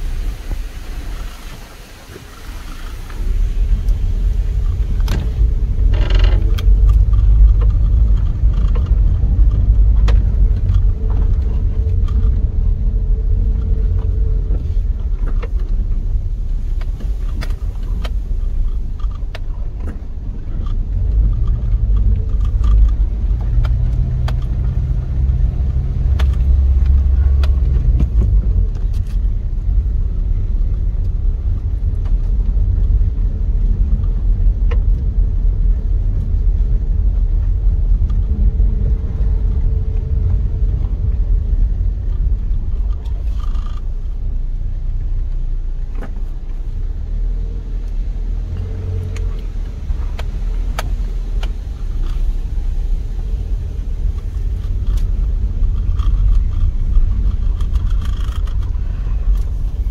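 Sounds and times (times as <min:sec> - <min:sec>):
low rumble of car engine: 0:00.0 - 0:59.9
tyres on road: 0:00.0 - 0:59.9.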